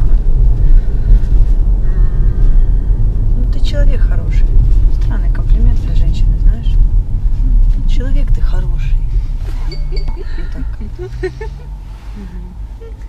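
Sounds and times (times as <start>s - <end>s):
car engine and road rumble: 0.0s - 13.0s
voices: 9.6s - 13.0s.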